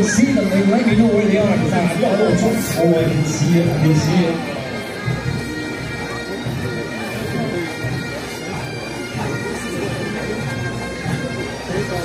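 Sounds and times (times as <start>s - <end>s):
crowd voices: 0.0s - 12.0s
pipe band bagpipes playing: 0.0s - 12.0s.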